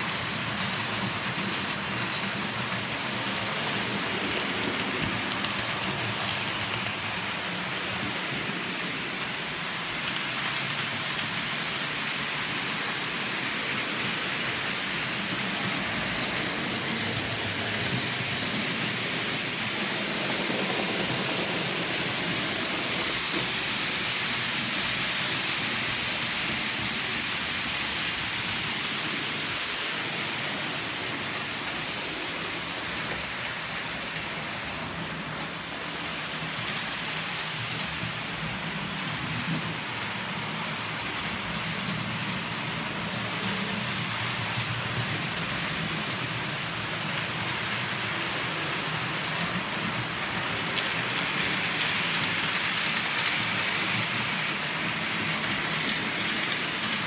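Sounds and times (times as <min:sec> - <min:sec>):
model train wheels rattling on track: 0:00.0 - 0:57.0.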